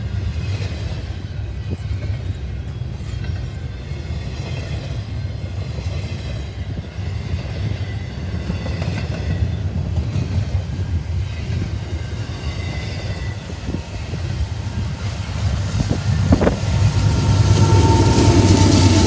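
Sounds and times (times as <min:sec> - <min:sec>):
diesel locomotive: 0:00.0 - 0:19.0
train wheels rumbling on rail: 0:00.0 - 0:19.0.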